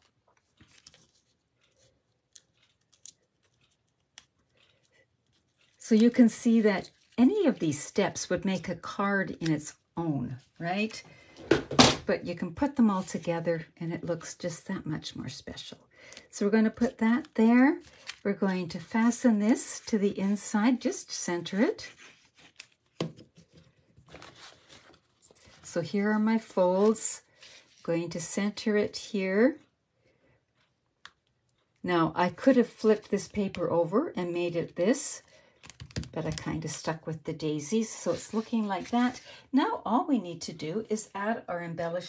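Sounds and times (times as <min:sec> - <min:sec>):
paper ticks and rustles: 0:00.0 - 0:09.7, 0:16.7 - 0:18.8, 0:21.9 - 0:25.7.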